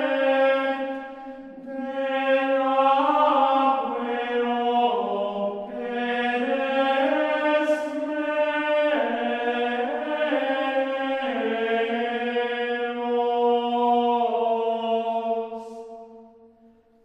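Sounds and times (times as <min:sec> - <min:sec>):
voices chanting in unison: 0:00.0 - 0:16.6.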